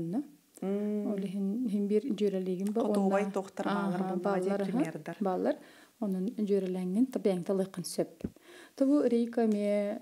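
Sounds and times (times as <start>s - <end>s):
person talking: 0.0s - 8.2s.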